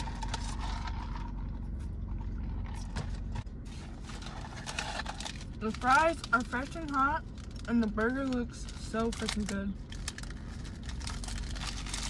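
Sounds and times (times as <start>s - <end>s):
car interior hum: 0.0s - 12.0s
paper wrapper crackling: 3.7s - 12.0s.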